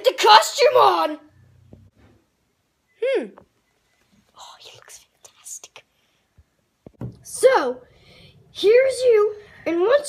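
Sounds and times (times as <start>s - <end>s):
whispering: 4.3s - 5.9s.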